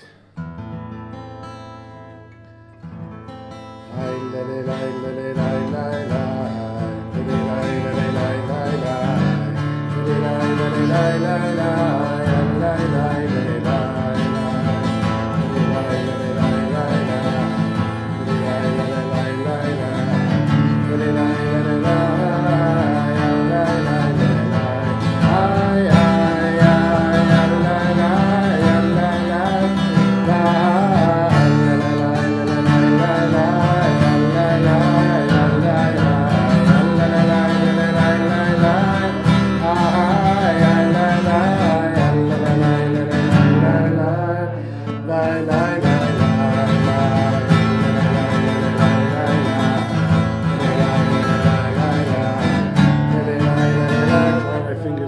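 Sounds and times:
man singing: 0.0s - 0.4s, 3.8s - 55.0s
acoustic guitar strumming: 0.0s - 55.0s.

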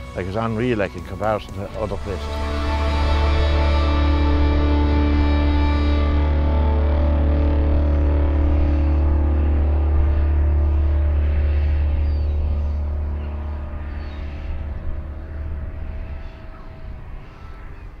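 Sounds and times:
held final music chord: 0.0s - 17.8s
steady low drone: 0.0s - 18.0s.

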